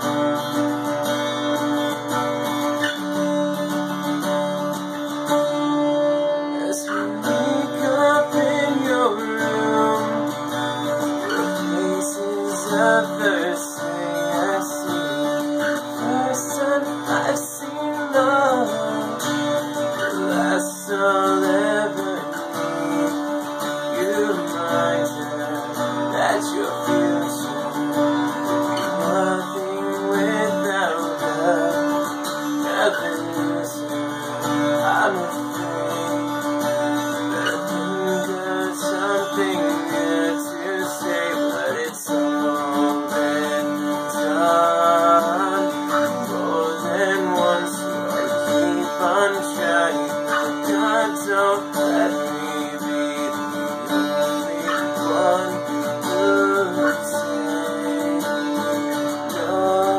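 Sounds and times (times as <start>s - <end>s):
acoustic guitar strumming: 0.0s - 59.9s
man singing: 0.0s - 59.9s.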